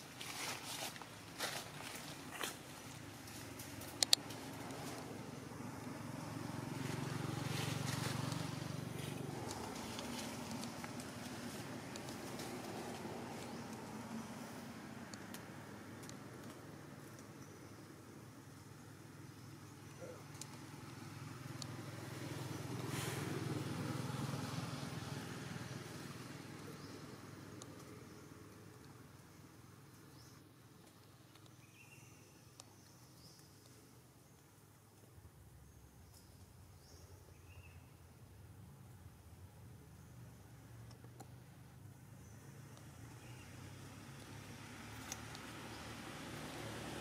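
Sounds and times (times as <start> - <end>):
vehicle engine rumble passing: 1.8 - 17.0, 18.1 - 28.8, 42.3 - 47.0
faint rustling and ticks: 6.9 - 13.9.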